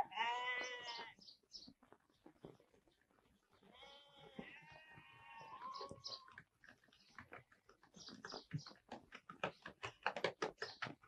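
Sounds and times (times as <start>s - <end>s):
sheep or goats bleating: 0.0s - 1.2s, 3.7s - 6.0s
horse hooves on dirt road: 4.3s - 11.0s.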